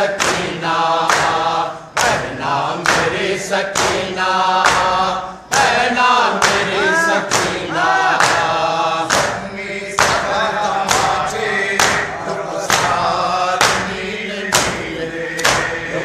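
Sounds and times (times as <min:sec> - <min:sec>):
men chanting in unison: 0:00.0 - 0:16.0
chest-beating slaps: 0:00.1 - 0:15.9.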